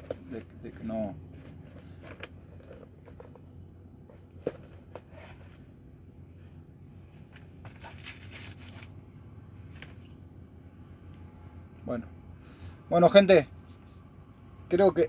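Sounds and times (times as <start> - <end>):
steady low hum: 0.0 - 15.0
case rustling and clicking: 1.4 - 5.6.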